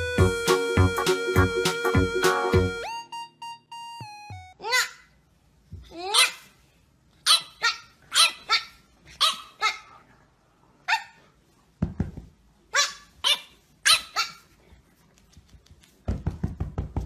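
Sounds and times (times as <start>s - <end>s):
puppy yapping: 7.2s - 10.0s, 12.7s - 14.5s.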